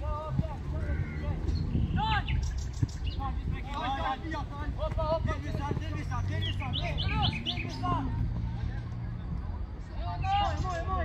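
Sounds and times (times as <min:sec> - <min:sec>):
voices calling out: 0:00.0 - 0:11.0
bird chirping: 0:00.8 - 0:03.9, 0:05.2 - 0:08.3.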